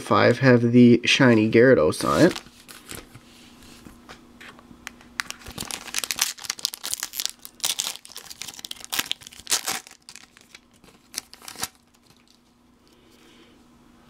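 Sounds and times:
foil wrapper crinkling and tearing: 2.0s - 3.1s, 5.2s - 12.5s.

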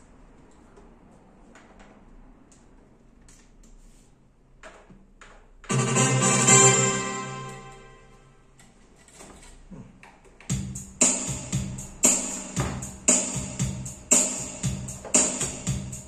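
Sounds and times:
keyboard drum rhythm: 5.7s - 7.8s, 10.5s - 16.0s.

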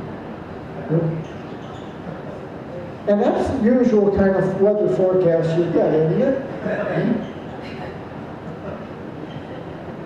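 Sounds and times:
low room noise rush: 0.0s - 10.0s.

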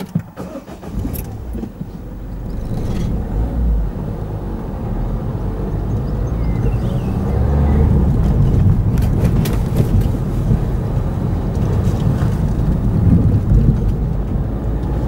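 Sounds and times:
car engine accelerating: 0.4s - 15.0s.

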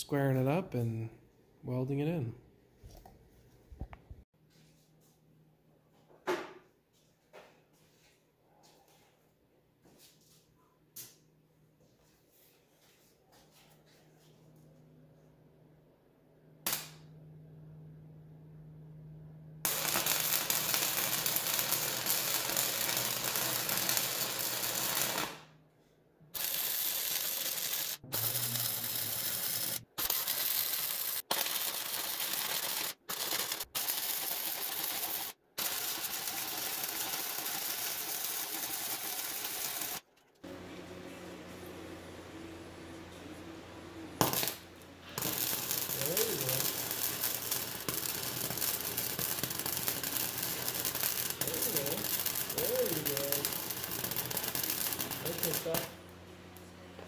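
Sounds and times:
welding arc crackling: 16.7s - 17.1s, 19.7s - 25.4s, 26.4s - 40.1s, 44.2s - 56.0s.

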